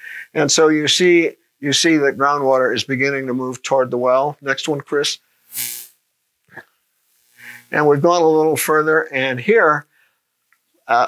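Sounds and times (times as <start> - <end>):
breath into microphone: 0.0 - 0.4, 7.3 - 7.7, 9.9 - 10.3.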